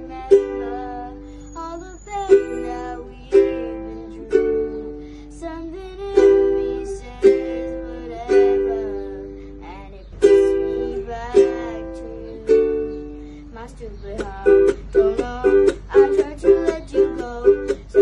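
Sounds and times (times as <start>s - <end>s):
ukulele strumming chords: 0.0s - 1.4s, 2.3s - 9.4s, 10.2s - 18.0s.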